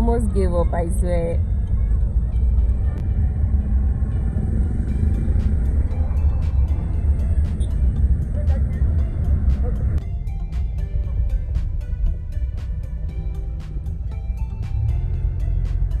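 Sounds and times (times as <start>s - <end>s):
car cabin rumble: 0.0s - 16.0s
faint music with beat: 0.0s - 16.0s.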